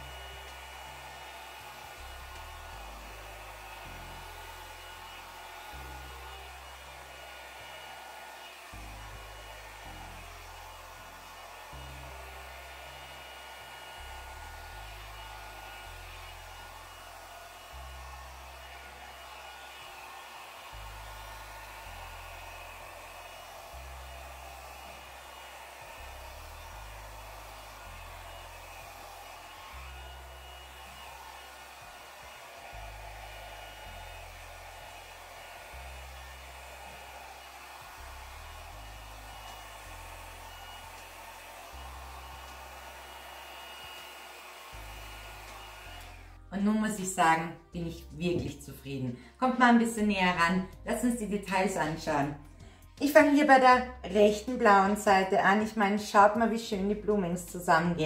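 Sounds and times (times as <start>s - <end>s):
hair dryer running: 0.0s - 58.0s.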